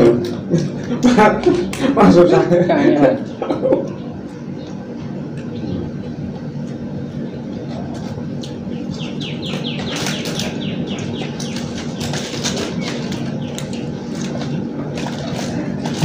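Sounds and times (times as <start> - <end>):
background hum and murmur: 0.0 - 16.0
plastic spoons scraping boxes: 9.8 - 16.0.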